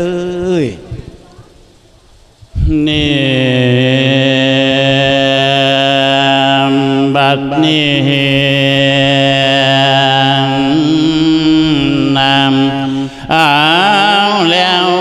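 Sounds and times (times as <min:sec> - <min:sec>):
man singing sustained notes: 0:00.0 - 0:00.9, 0:02.6 - 0:15.0.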